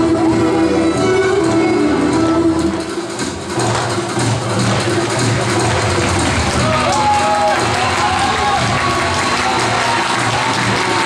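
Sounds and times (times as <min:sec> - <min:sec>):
folk dance music: 0:00.0 - 0:11.0.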